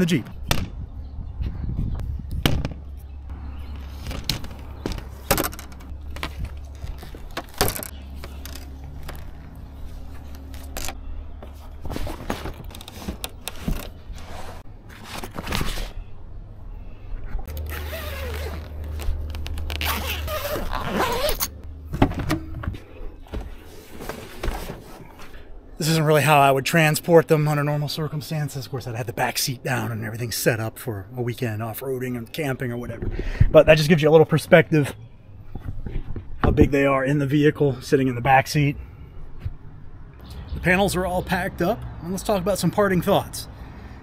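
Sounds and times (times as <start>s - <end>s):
knocks clicks and scrapes of frames: 3.7s - 16.0s.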